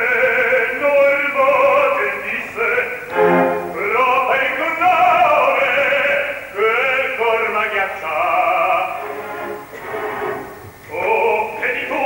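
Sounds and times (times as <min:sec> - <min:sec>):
man singing operatic recitative: 0:00.0 - 0:09.4, 0:10.8 - 0:12.0
orchestral accompaniment: 0:03.1 - 0:04.1, 0:09.0 - 0:10.6.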